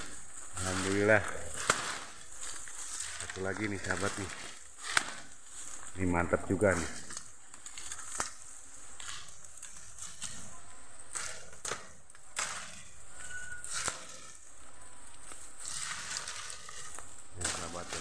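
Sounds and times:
bamboo leaves and stems rustling: 0.0s - 18.0s.

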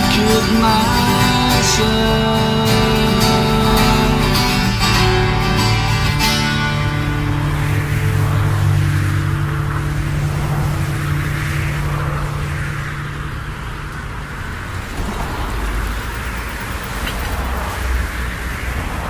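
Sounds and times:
noisy wash: 0.0s - 19.0s
rough rumbling noise: 0.0s - 19.0s.

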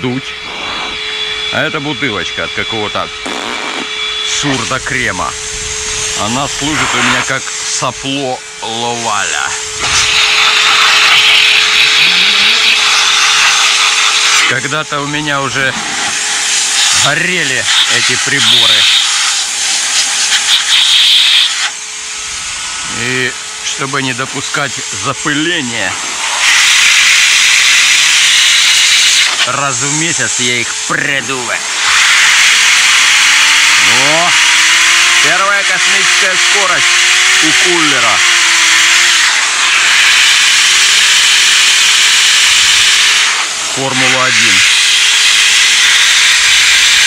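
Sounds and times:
cooler fan whining: 0.0s - 47.0s
vacuum cleaner blowing air: 0.0s - 47.0s.

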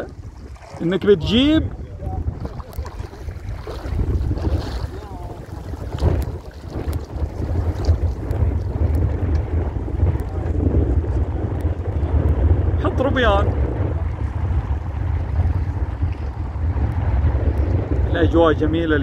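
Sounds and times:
small waves lapping: 0.0s - 12.1s, 13.0s - 18.1s
wind buffeting microphone: 0.0s - 19.0s.

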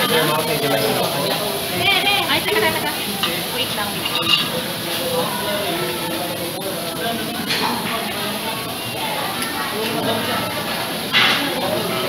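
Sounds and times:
meat and onion sizzling on griddle: 0.0s - 12.0s.

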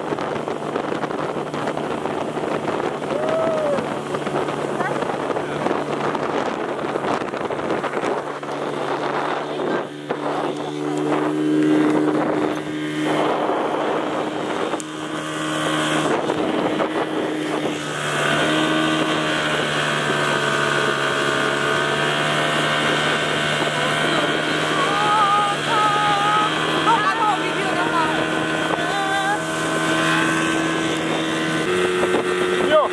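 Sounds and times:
outboard motor engine: 0.0s - 32.9s
rushing water: 0.0s - 32.9s
wind buffeting microphone: 0.0s - 32.9s.

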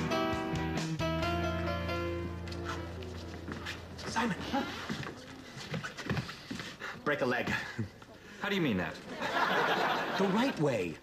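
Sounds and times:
man speaking: 4.0s - 4.8s.

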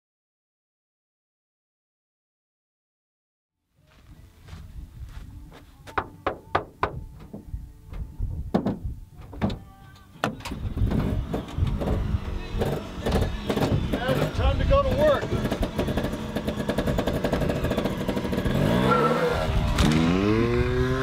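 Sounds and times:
boot footsteps on dirt: 3.8s - 8.1s
van doors opening with clunks: 5.8s - 16.1s.

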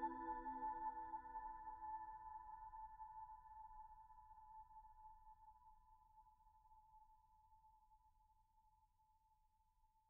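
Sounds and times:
ambient background music: 0.0s - 3.6s.

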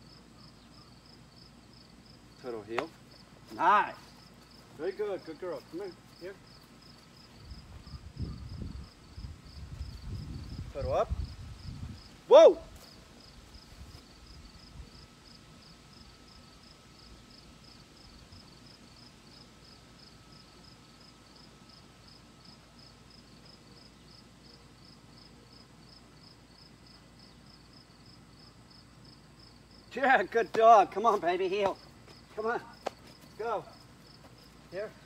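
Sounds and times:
faint insect chirping: 0.0s - 30.2s, 31.0s - 35.0s.

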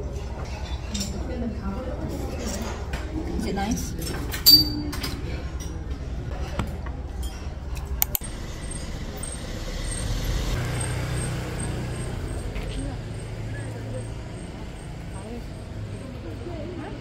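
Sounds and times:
background chatter: 0.0s - 10.1s, 11.3s - 17.0s
tableware clinking: 4.0s - 5.9s
vehicle traffic rumble: 5.3s - 17.0s.

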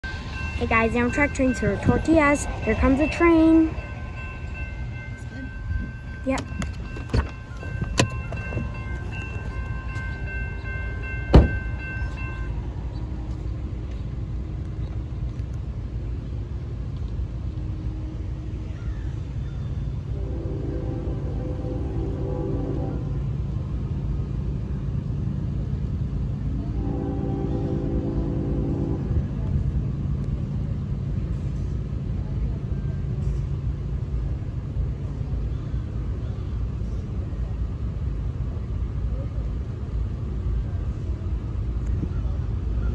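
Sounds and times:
low rumble: 0.0s - 9.8s
high steady tones: 0.0s - 12.6s
diesel locomotive horn: 20.0s - 23.4s, 26.6s - 29.5s.

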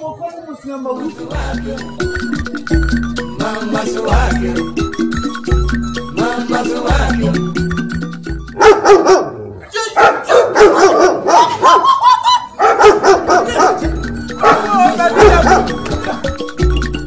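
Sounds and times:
upbeat music with deep beat: 0.9s - 9.1s, 13.0s - 17.0s
dog barking: 8.6s - 15.8s.

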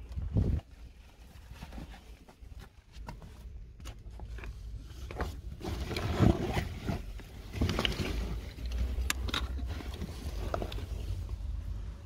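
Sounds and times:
wind rumble on microphone: 0.0s - 0.7s.

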